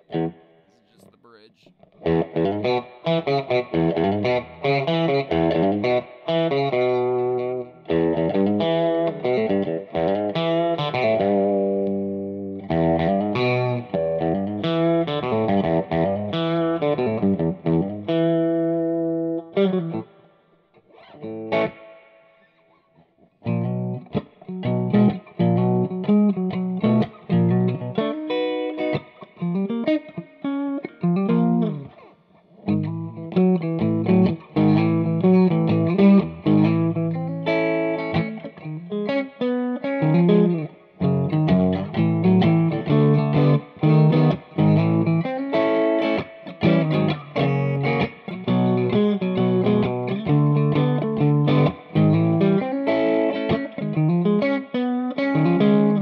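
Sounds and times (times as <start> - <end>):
electric guitar chords and riffs: 0.0 - 1.0, 1.9 - 22.6, 23.2 - 56.0.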